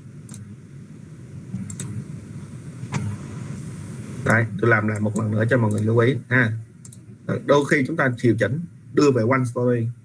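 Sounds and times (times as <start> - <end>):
computer mouse clicks: 0.3 - 0.5, 1.6 - 2.0, 4.3 - 5.9, 6.8 - 7.0.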